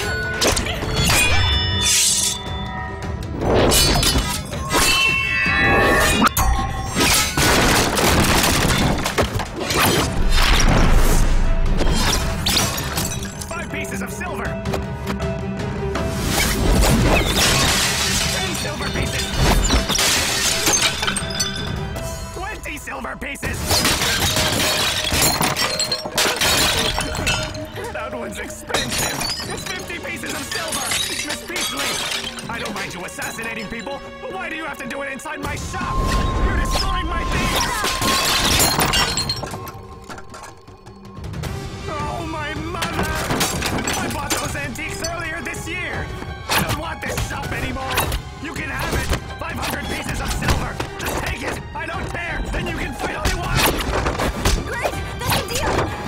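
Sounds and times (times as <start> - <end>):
metal weapons clashing: 0.0 - 2.6, 3.6 - 10.1, 17.2 - 21.7, 23.6 - 27.7, 28.7 - 33.6, 36.2 - 39.9
background music: 0.0 - 56.0
pottery shattering: 3.6 - 10.8, 11.8 - 13.6, 17.0 - 21.8, 23.6 - 27.9, 28.7 - 33.8, 36.0 - 40.9, 42.8 - 45.4.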